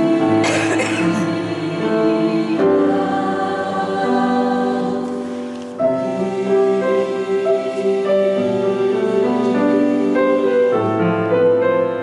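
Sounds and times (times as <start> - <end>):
choir singing chords in harmony: 0.0 - 12.0.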